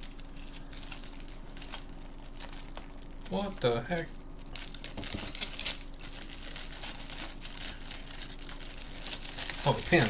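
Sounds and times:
packaging bag crinkling: 0.0 - 10.0.

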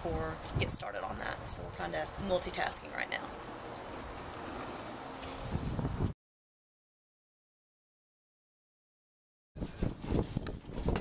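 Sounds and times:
wind buffeting microphone: 0.0 - 3.0, 3.6 - 6.2, 9.6 - 11.0
outdoor background noise: 0.0 - 6.2.

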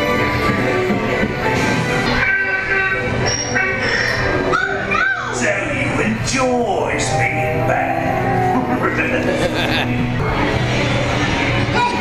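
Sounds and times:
music with long held chords: 0.0 - 4.6, 5.8 - 12.0.

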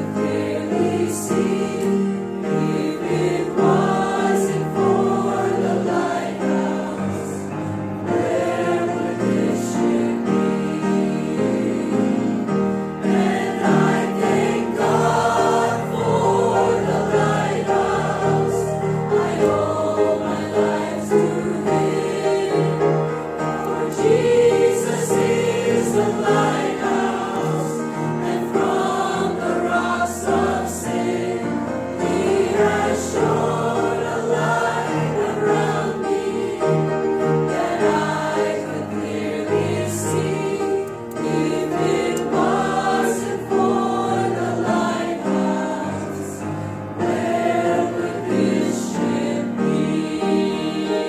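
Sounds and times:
choir singing a hymn: 0.0 - 51.0
upright piano: 0.0 - 51.0.

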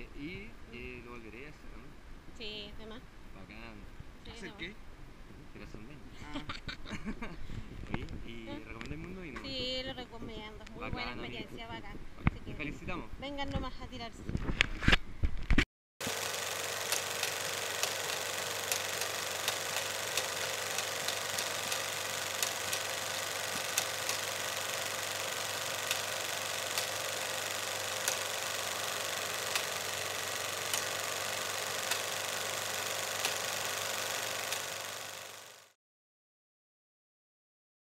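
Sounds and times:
film crackle hiss: 16.0 - 35.7
irregular pops: 16.1 - 35.6.

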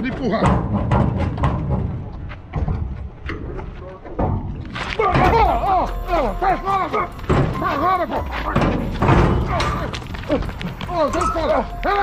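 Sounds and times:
man shouting wordlessly: 5.0 - 8.6, 10.9 - 12.0.

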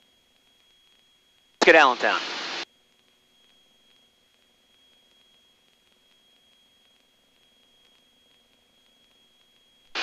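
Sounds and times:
faint high-pitched whine: 0.0 - 10.0
man speaking over intercom: 1.6 - 2.3
radio static burst: 1.6 - 2.6.

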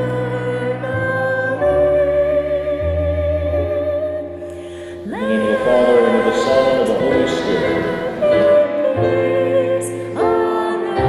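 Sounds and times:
group singing a hymn: 5.0 - 9.9.

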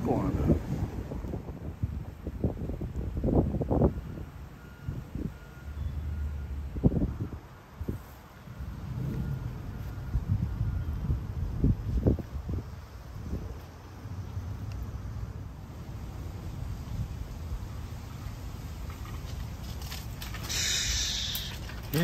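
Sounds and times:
wind buffeting microphone: 0.0 - 20.6.

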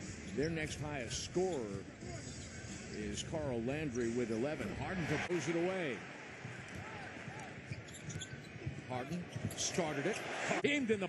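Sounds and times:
arena crowd noise: 0.4 - 11.0.

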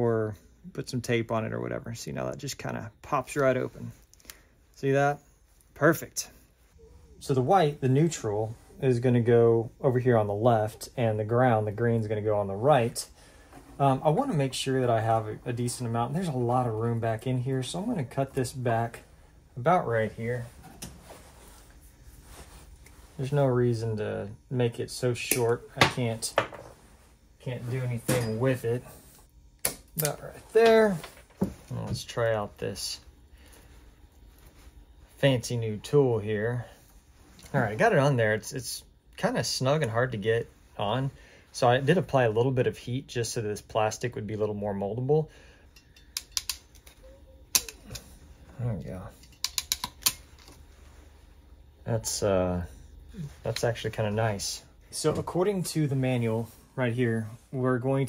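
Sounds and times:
wire rustling: 18.1 - 23.4.

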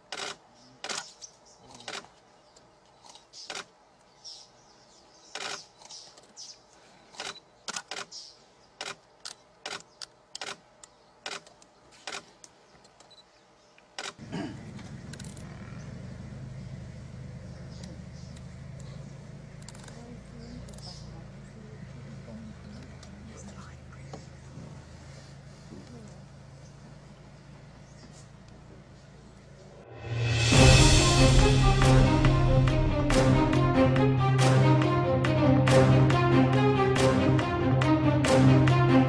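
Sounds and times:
steady low hum: 14.2 - 39.0
faint whispered voices: 19.8 - 27.1.

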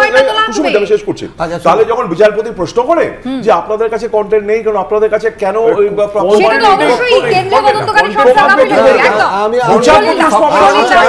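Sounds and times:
people talking over one another: 6.3 - 11.0.

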